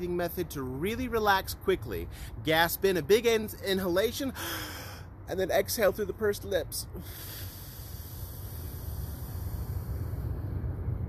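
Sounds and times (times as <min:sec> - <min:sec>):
breathy exhalation: 0:04.4 - 0:05.2, 0:06.9 - 0:10.7
wind rumble on microphone: 0:07.7 - 0:11.0.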